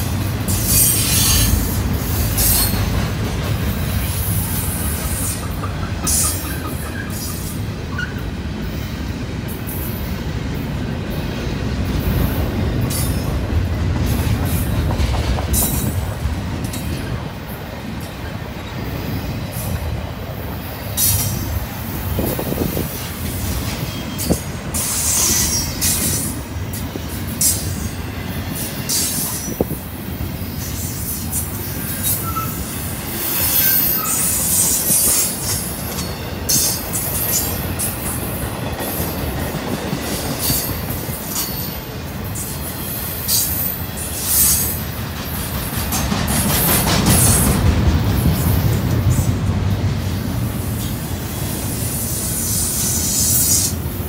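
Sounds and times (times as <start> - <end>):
steel wheels rumbling on rail: 0.0 - 54.0.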